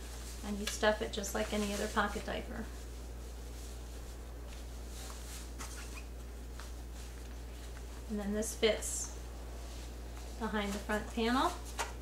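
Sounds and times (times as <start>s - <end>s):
cloth rustling: 0.0s - 12.0s.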